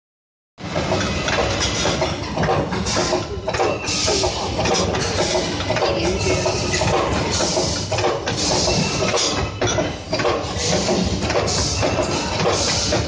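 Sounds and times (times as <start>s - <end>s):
seam rolling machine running: 0.6s - 13.0s.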